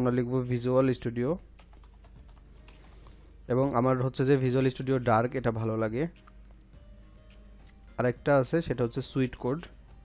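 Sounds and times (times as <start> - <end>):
computer keyboard typing: 1.6 - 3.2
man speaking: 3.5 - 6.2, 8.0 - 9.8.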